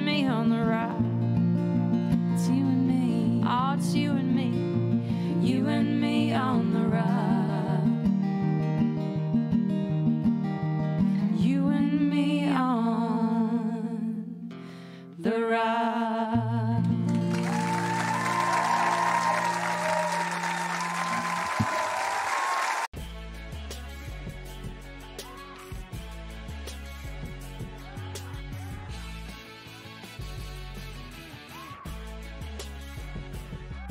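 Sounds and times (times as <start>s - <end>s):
women singing with vibrato: 0.0s - 1.0s, 2.4s - 4.6s, 5.2s - 8.1s, 11.2s - 14.5s, 15.2s - 17.1s
strummed acoustic guitars: 0.0s - 11.6s, 16.7s - 21.3s
applause: 17.1s - 22.9s.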